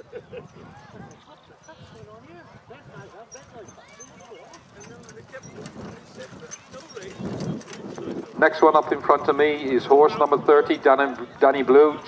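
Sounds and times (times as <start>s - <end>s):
spectators chattering: 0.0s - 12.0s
horse hoofbeats on grass: 3.4s - 11.2s.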